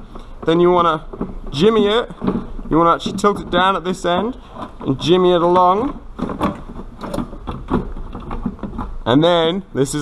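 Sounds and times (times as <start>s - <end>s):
plastic airbox clicking and rattling: 0.0s - 9.2s.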